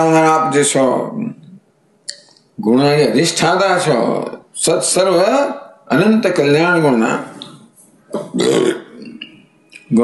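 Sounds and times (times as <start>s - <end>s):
man's throaty vocal sound: 8.2s - 9.2s.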